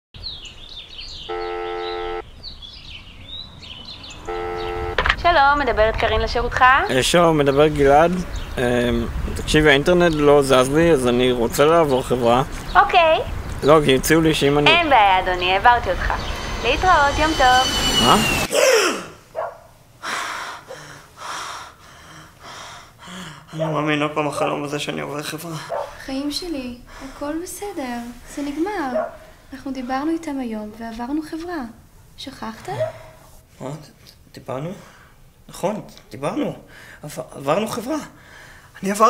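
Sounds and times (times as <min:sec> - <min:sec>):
birds chirping: 0:00.2 - 0:18.5, 0:20.6 - 0:31.6
telephone ringback tone: 0:01.3 - 0:02.2
sharp breath: 0:17.3 - 0:19.2, 0:20.0 - 0:23.6, 0:38.2 - 0:38.7.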